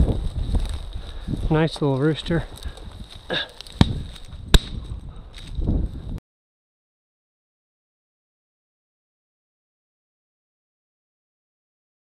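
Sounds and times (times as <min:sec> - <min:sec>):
wind rumble on microphone: 0:00.0 - 0:06.2.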